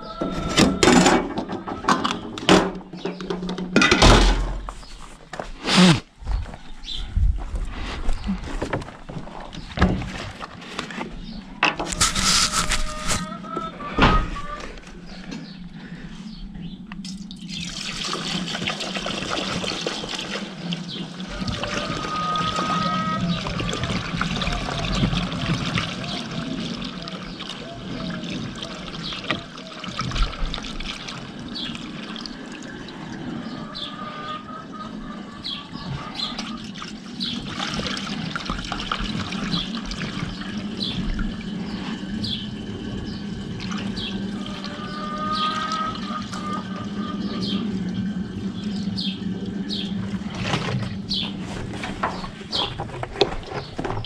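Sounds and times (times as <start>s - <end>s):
fuel pouring through funnel: 17.0s - 33.8s, 36.3s - 54.0s.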